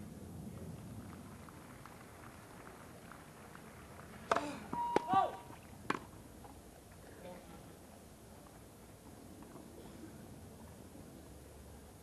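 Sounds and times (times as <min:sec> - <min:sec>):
brief beep: 0:04.8 - 0:05.2.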